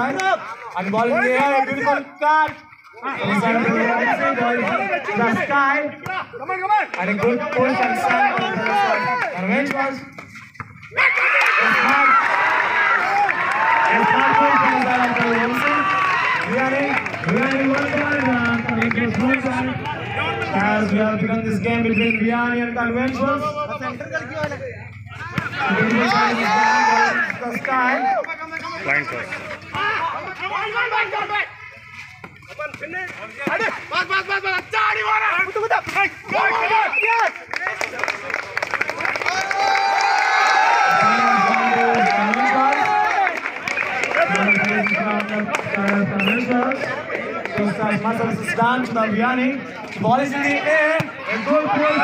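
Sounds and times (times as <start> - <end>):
crowd shouting and calling out: 0.0 - 10.1, 10.8 - 38.3, 39.1 - 52.0
crowd cheering loudly: 6.9 - 9.4, 10.9 - 20.9, 25.2 - 31.6, 36.2 - 47.7, 50.4 - 52.0.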